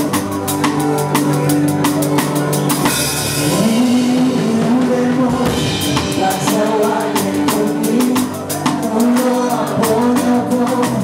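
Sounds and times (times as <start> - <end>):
bass guitar: 0.0 - 11.0
drum kit beat: 0.0 - 11.0.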